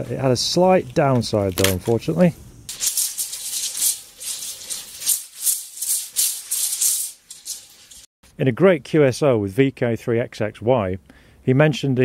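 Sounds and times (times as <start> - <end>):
shaker rattle: 2.7 - 8.1.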